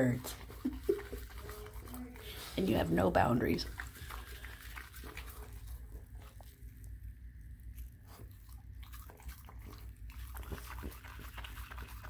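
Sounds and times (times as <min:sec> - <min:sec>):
dog clicks and snuffles: 0:08.1 - 0:12.0.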